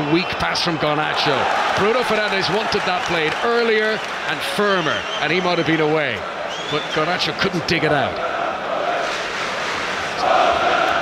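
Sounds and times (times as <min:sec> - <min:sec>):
stadium crowd chanting: 0:06.2 - 0:11.0.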